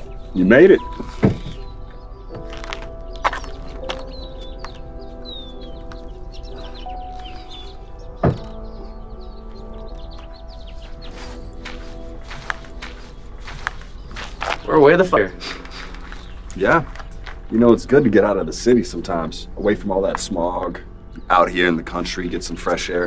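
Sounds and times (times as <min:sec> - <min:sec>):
background music with sustained chords: 0:00.0 - 0:23.0
car door shutting: 0:08.2 - 0:08.8.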